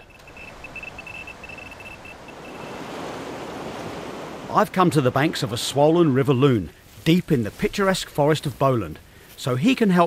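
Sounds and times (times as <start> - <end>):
high broken tone: 0.0 - 3.0
rushing river water: 0.0 - 6.9.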